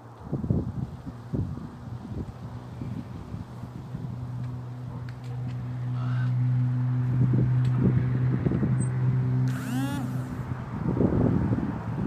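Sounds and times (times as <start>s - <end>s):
vehicle passing by: 1.1s - 12.0s.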